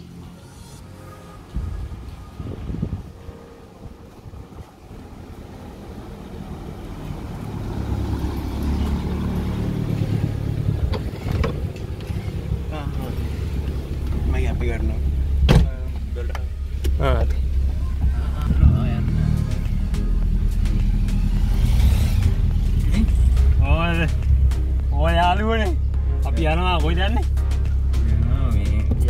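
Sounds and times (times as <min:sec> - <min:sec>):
car engine running: 0:04.0 - 0:29.0
people talking: 0:14.2 - 0:19.7, 0:22.8 - 0:24.2, 0:24.9 - 0:27.3, 0:28.2 - 0:29.0.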